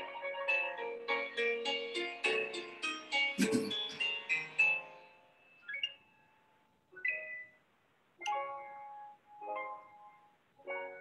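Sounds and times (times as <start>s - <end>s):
keyboard notes ringing: 0.0s - 6.4s.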